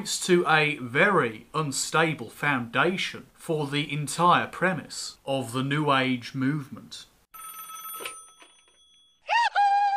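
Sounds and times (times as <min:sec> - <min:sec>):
bell-like chime: 0:07.4 - 0:09.2.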